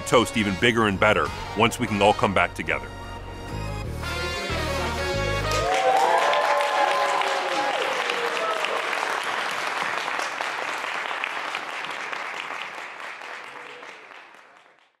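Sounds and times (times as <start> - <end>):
small crowd applauding: 4.9 - 15.0.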